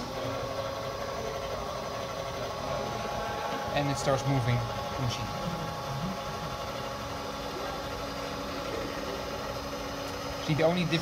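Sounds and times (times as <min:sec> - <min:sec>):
milling machine spindle motor humming: 0:00.0 - 0:11.0.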